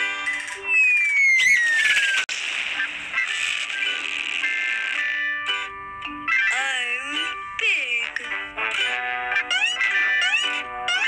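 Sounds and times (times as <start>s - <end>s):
falling whistle: 0.6s - 2.2s.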